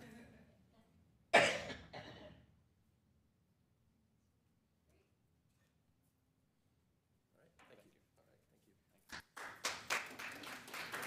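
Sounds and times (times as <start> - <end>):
person coughing: 1.3 - 2.4.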